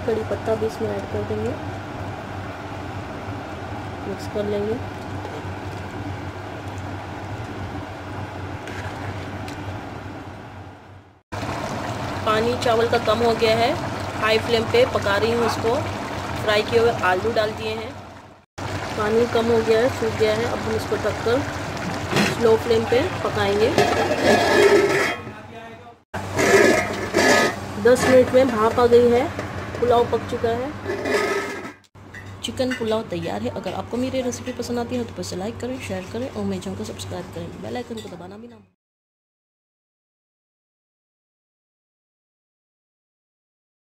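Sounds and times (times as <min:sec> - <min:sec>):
pot boiling hard: 0:11.3 - 0:25.3, 0:26.2 - 0:32.2.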